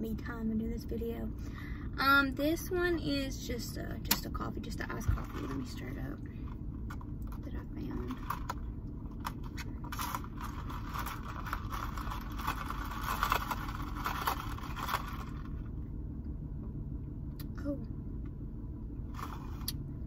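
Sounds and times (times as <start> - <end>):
low rumble inside car: 0.0 - 20.0
ice rattling in plastic cup: 9.2 - 15.6.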